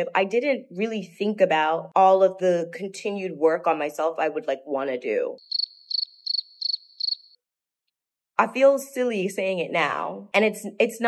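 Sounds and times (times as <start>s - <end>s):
cricket chirping: 5.4s - 7.4s.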